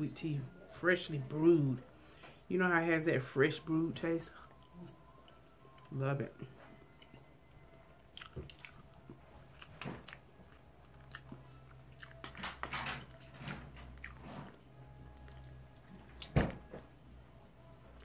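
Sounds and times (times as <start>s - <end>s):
person chewing and biting: 8.1s - 16.6s.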